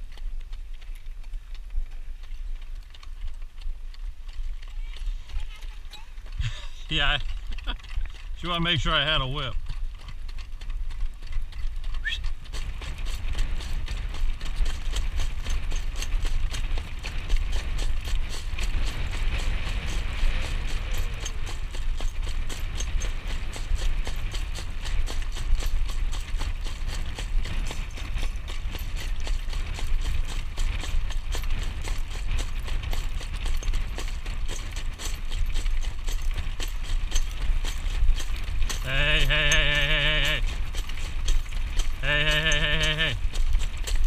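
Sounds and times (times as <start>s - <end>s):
horse hoofbeats trotting: 0.0s - 44.0s
wind rumble on microphone: 9.8s - 44.0s.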